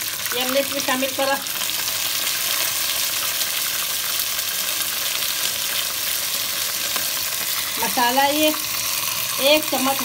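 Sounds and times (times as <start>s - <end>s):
chicken frying in hot oil: 0.0s - 10.0s.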